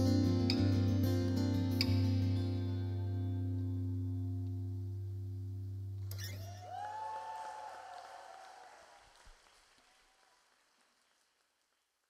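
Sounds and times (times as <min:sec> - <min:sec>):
band held chord: 0:00.0 - 0:06.2
person whooping: 0:06.2 - 0:09.0
audience applauding: 0:06.6 - 0:12.0.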